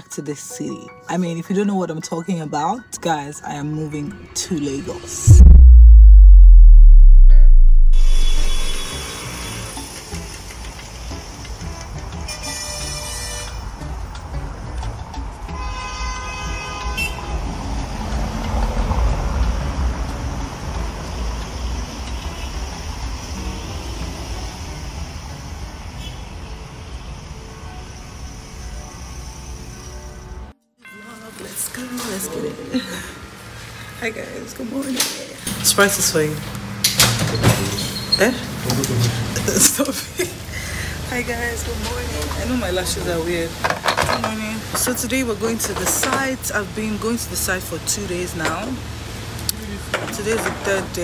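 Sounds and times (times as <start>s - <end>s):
city traffic: 4.1s - 30.5s, 44.4s - 51.0s
deep bass boom: 5.0s - 9.0s.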